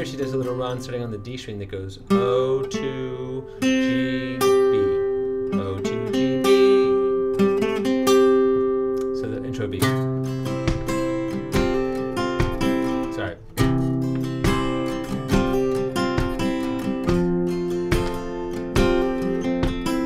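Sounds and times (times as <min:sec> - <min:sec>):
acoustic guitar melody: 0:00.0 - 0:20.0
strummed guitar chords: 0:00.0 - 0:20.0.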